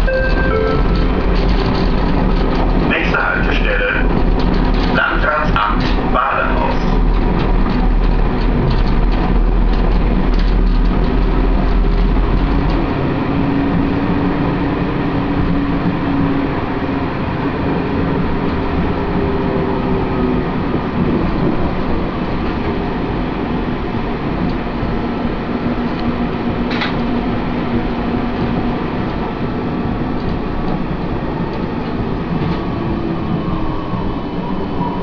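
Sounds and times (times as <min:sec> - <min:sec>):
tram rolling on rails: 0:00.0 - 0:35.0.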